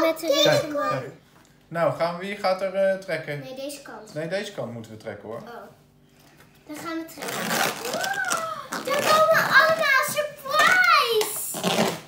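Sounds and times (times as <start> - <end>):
child calling out: 7.8 - 11.2.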